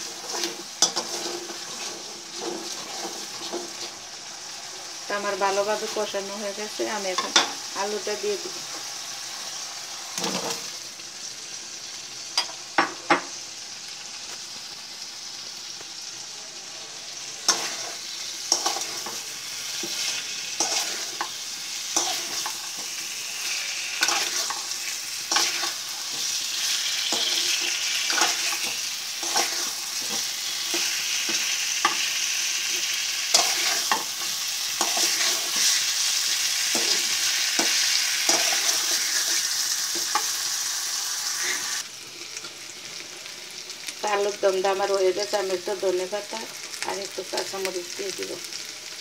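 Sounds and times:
spatula scraping a pan: 0.0 - 3.9, 17.4 - 32.1, 32.7 - 40.6, 41.2 - 41.8
potatoes sizzling in hot oil: 0.0 - 49.0.

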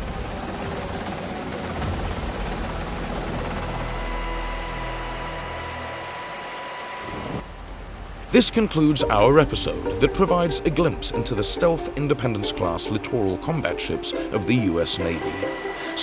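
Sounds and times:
helicopter rotor and engine: 0.0 - 7.5, 9.6 - 16.0.

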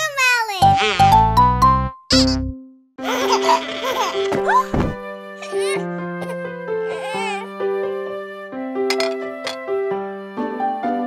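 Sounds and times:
gentle children's music: 0.0 - 11.0
cartoon toddler whimpering: 3.3 - 4.7, 5.4 - 7.5.

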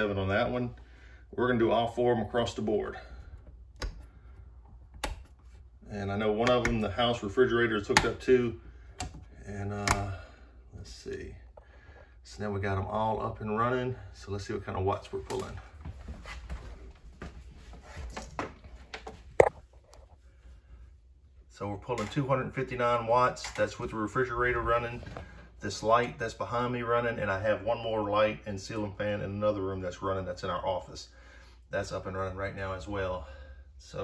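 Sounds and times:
switch handle clicks: 4.8 - 5.4
footsteps: 15.0 - 20.1.

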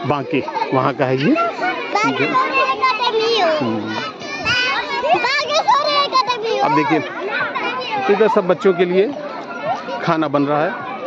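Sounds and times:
children chattering and calling: 0.0 - 11.0.

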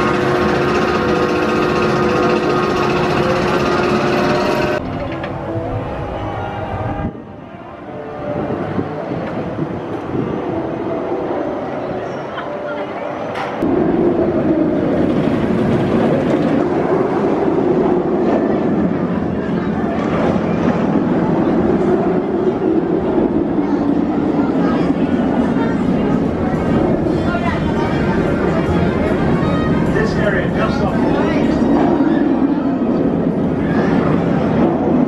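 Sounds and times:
roller coaster rumbling roar: 0.0 - 35.0.

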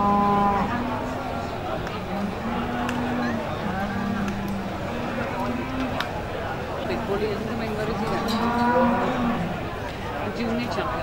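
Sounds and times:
cow mooing: 0.0 - 1.0, 2.4 - 6.0, 8.0 - 9.6.

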